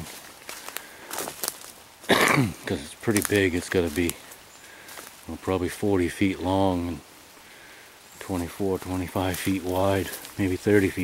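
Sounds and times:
light crackles: 0.0 - 5.5, 7.1 - 11.0
footsteps on dry leaves and twigs: 0.0 - 6.6, 7.8 - 11.0.

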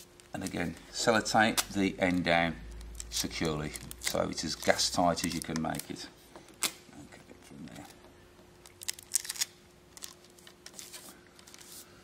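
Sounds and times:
card and tape crinkling: 0.0 - 6.8, 8.6 - 11.9
faint steady hum: 0.0 - 12.0.

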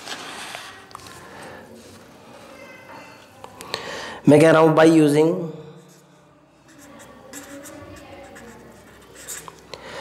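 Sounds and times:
pen writing on paper: 6.7 - 9.6.

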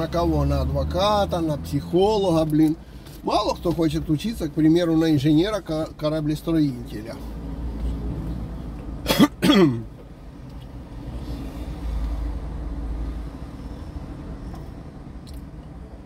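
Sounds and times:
street traffic rumble: 0.0 - 16.0
man coughing: 9.0 - 9.9.

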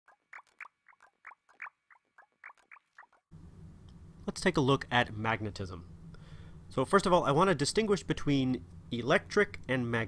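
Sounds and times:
low steady hum with hiss: 3.3 - 10.0.

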